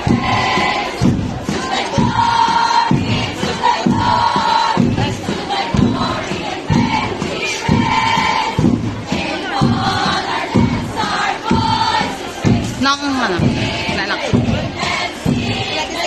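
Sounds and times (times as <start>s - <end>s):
crowd noise: 0.0s - 16.0s
drums beating: 0.0s - 16.0s
group chanting and shouting: 0.0s - 16.0s.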